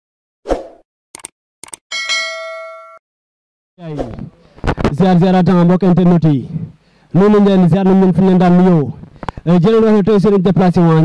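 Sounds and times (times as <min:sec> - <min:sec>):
bright bell ding: 0:01.9 - 0:03.0.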